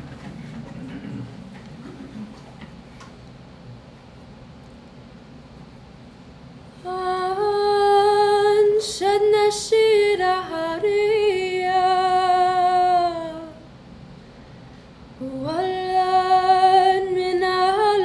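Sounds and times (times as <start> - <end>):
girl singing unaccompanied: 6.8 - 13.6, 15.2 - 18.0.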